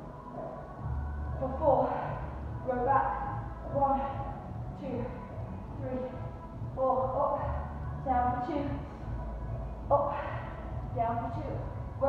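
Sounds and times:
low pulsing beat: 0.0 - 12.0.

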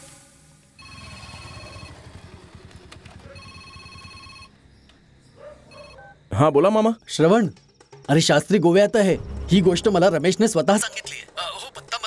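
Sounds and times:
mobile phone ringing: 0.8 - 2.1, 3.3 - 4.6, 5.7 - 6.0.

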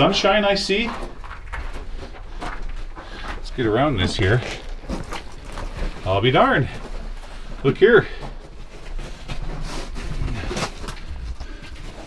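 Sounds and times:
footsteps on loose dirt and rock: 0.0 - 12.0.

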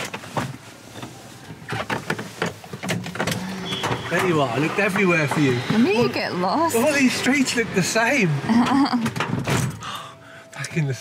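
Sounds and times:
street noise: 0.0 - 11.0.

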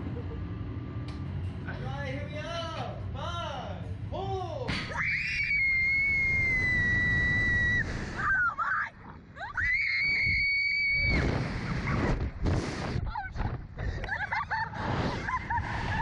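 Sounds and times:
girls screaming: 4.9 - 11.2
wind rumble on microphone: 9.6 - 16.0.

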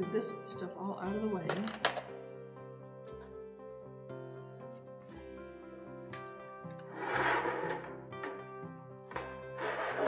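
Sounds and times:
objects sliding on wooden table: 6.8 - 8.4, 9.2 - 10.0.

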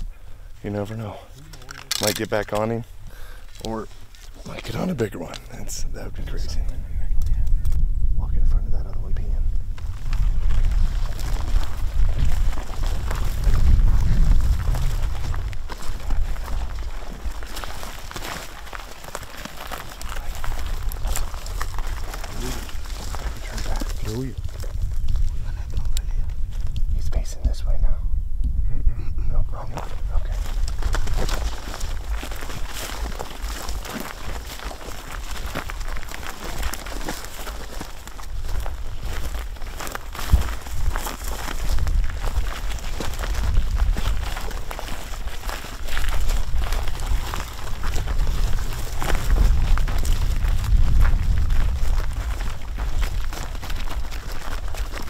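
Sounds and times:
dry grass crackling and rustling: 0.0 - 27.7, 29.5 - 55.0
wind rumbling on microphone: 0.0 - 55.0.

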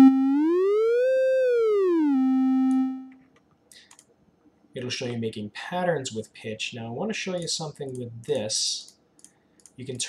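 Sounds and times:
synthesized tone gliding in pitch: 0.0 - 3.1.

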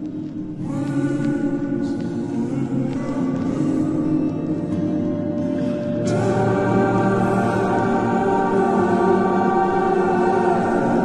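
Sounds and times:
ambient music with held chords: 0.0 - 11.0.

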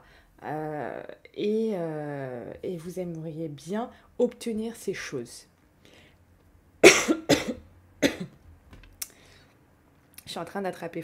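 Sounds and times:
woman coughing: 6.8 - 8.3.

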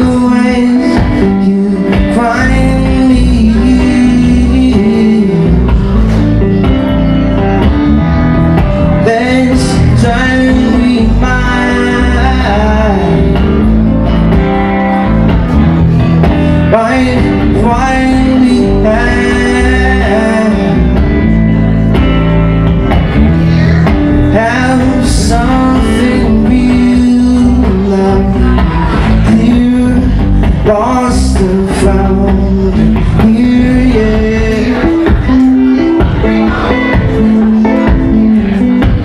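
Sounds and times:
man singing: 0.0 - 22.3, 23.2 - 39.0
electric guitar through amplifier: 0.0 - 39.0.

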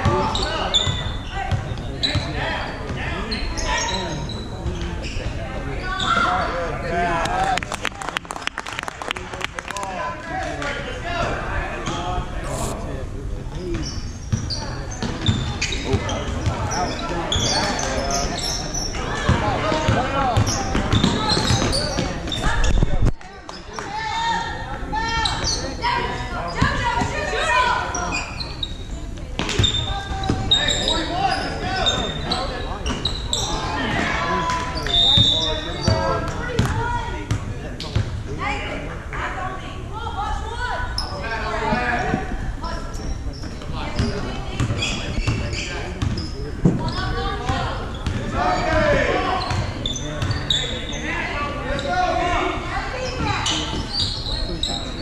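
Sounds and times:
voices and shouts echoing: 0.0 - 55.0.

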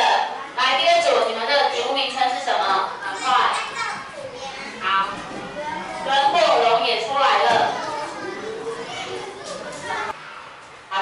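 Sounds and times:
children talking and calling out: 1.7 - 10.6.

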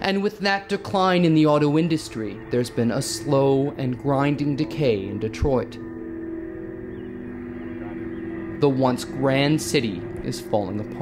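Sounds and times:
sustained low chord: 0.7 - 11.0.

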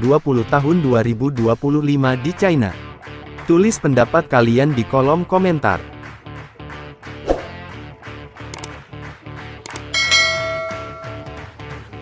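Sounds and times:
background music: 0.0 - 12.0
bell chime: 9.8 - 11.5.

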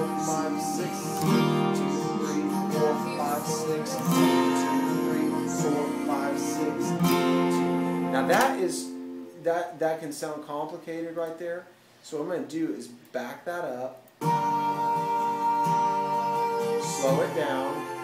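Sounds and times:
acoustic guitar strummed slowly: 0.0 - 9.5, 14.2 - 18.0
slowed song recording: 0.0 - 9.5, 14.2 - 18.0
man talking: 8.2 - 14.0, 16.8 - 17.9.

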